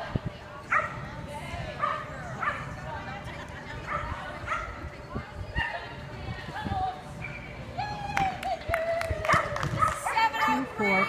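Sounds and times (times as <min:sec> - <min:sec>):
people's voices: 0:00.0 - 0:11.0
dog barking: 0:00.7 - 0:01.0.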